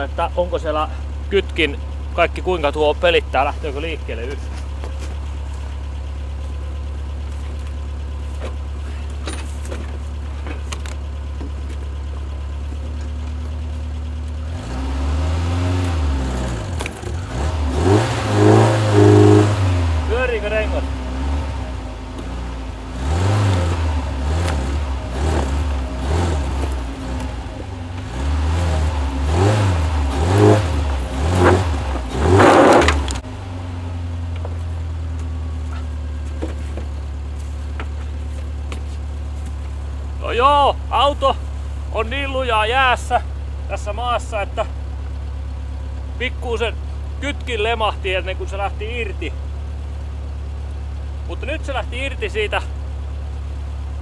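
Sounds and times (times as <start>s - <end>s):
car engine idling and revving: 0.0s - 54.0s.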